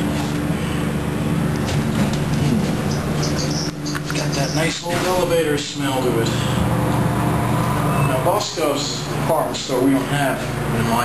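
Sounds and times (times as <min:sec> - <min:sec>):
elevator machinery humming: 0:00.0 - 0:10.9.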